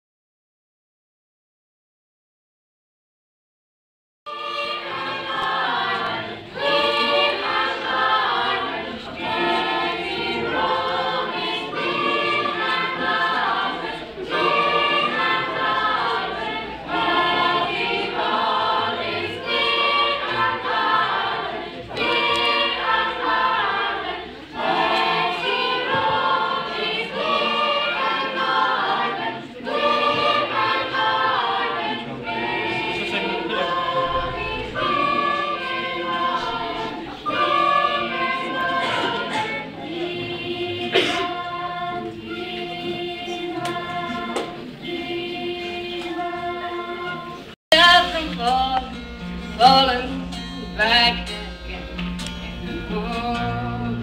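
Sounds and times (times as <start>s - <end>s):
choir singing: 4.3s - 49.0s, 49.6s - 54.0s.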